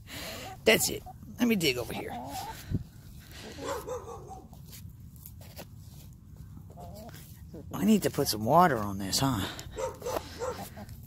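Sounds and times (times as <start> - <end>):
hens clucking: 0.2 - 4.6, 6.5 - 8.8, 9.8 - 11.0.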